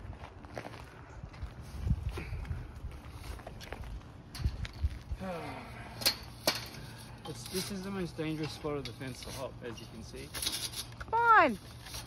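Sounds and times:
person grunting with effort: 5.2 - 6.0
chain-link gate rattling: 6.0 - 11.0.

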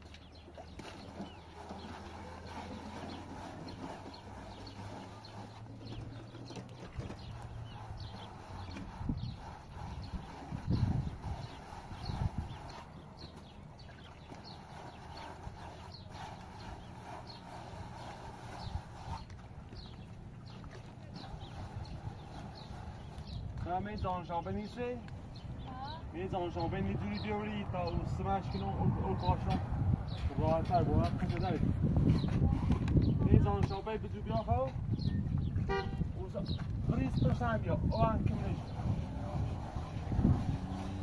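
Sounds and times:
plaster float scraping: 0.0 - 24.9, 26.3 - 41.0.

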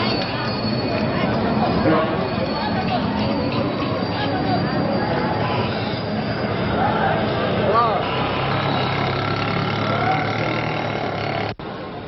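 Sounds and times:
many voices: 0.0 - 12.0
traffic noise: 0.0 - 12.0.

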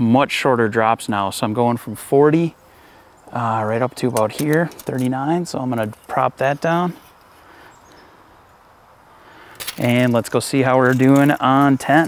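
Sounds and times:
distant bird chirps: 2.6 - 10.5.

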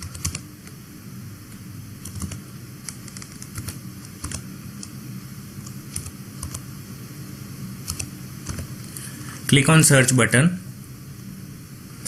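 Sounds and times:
keyboard typing: 0.0 - 0.4, 2.0 - 4.9, 5.6 - 6.7, 7.8 - 8.7
faint low hum: 0.0 - 12.0.

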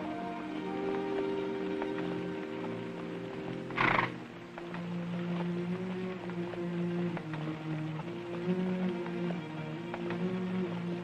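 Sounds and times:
horse hooves on dirt: 0.0 - 11.0
orchestral music low notes: 0.0 - 11.0
horse snorting: 3.8 - 4.2.

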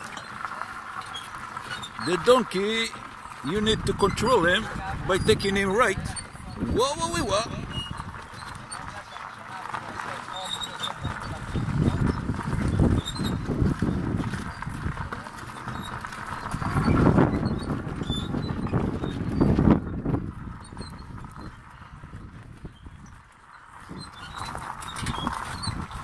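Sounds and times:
cart rumbling and rattling: 0.0 - 26.0
hooves clopping: 0.0 - 26.0.

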